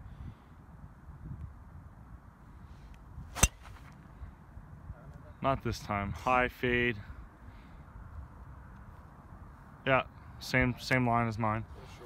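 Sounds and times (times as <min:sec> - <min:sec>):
golf club striking ball: 0:03.3 - 0:04.0.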